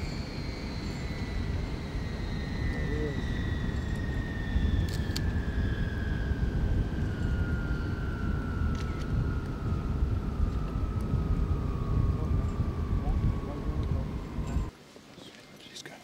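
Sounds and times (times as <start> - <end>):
heavy low rumble: 0.0 - 14.7
helicopter turbine whine winding down: 0.0 - 14.7.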